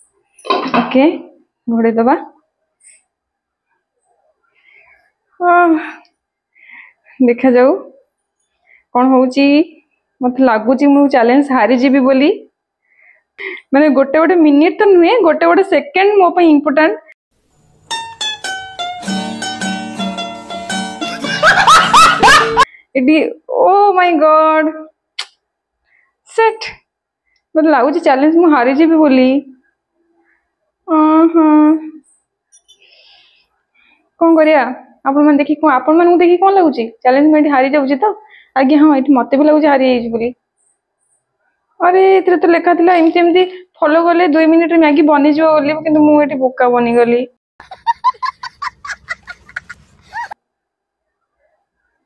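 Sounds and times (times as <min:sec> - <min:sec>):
woman speaking: 0:00.5 - 0:02.4, 0:05.4 - 0:06.1, 0:30.9 - 0:32.0, 0:41.8 - 0:47.4
music: 0:17.6 - 0:22.6
child laughing: 0:21.0 - 0:22.7, 0:47.6 - 0:50.4.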